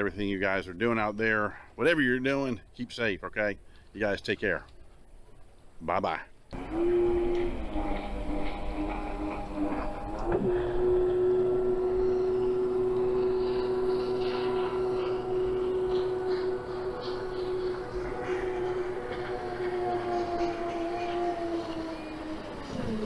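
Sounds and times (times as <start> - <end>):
motor humming: 6.5 - 23.0.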